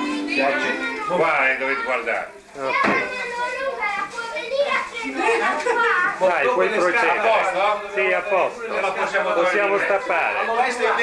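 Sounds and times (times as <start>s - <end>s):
children's voices: 0.0s - 6.2s.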